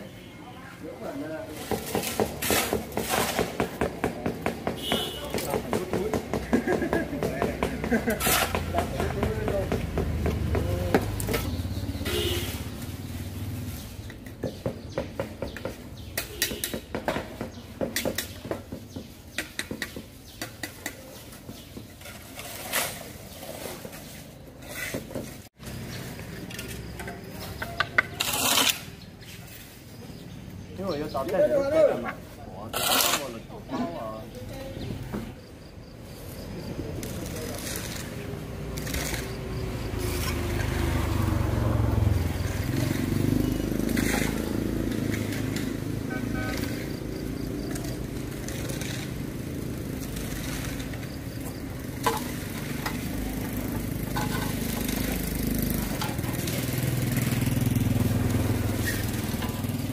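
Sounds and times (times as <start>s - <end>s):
hand tools tapping and scraping: 1.4s - 13.0s, 13.8s - 35.7s, 36.3s - 59.9s.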